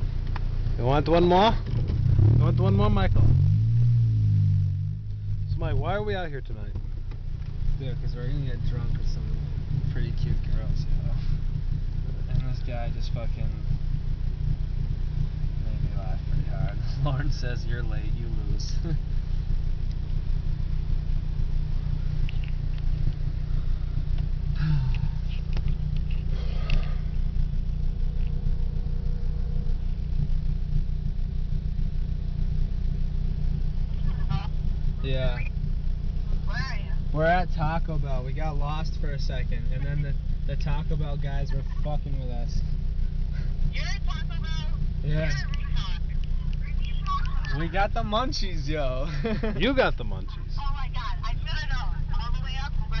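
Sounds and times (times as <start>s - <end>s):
car engine and road rumble: 0.0s - 53.0s
indistinct talking: 33.9s - 53.0s.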